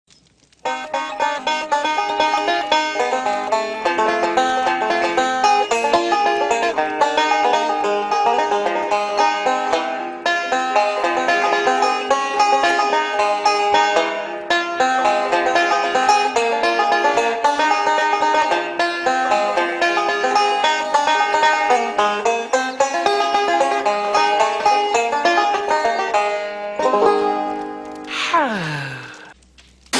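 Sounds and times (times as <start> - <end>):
banjo picking fast notes: 0.6 - 28.0.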